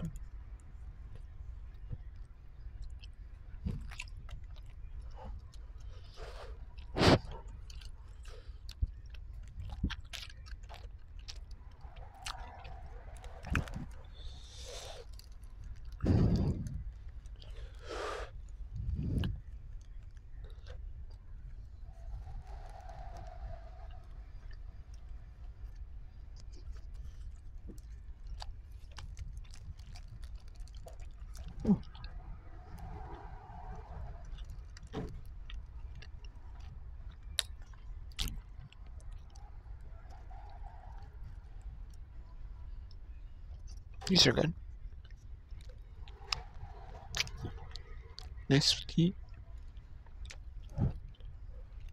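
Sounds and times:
person chewing food: 1.1 - 21.3, 24.3 - 32.2, 33.8 - 39.4, 44.8 - 46.5, 47.1 - 48.5, 49.3 - 51.9.

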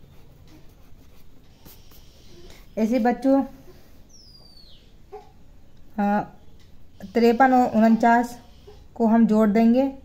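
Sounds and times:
pencil scratching on paper: 0.0 - 3.3.

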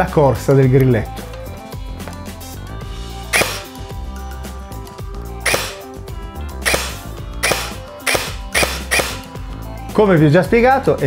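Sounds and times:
background music: 0.0 - 11.0
airsoft gun shots: 3.3 - 3.8, 5.4 - 5.9, 6.6 - 9.4.

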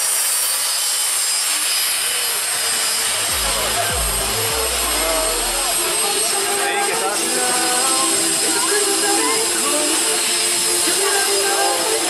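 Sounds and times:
jet engines roaring and whining: 0.0 - 12.0
crowd voices: 2.0 - 12.0
deep low rumble: 3.1 - 6.0.

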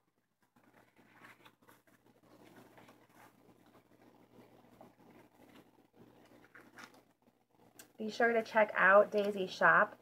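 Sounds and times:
paper pages rustling: 0.0 - 7.2.

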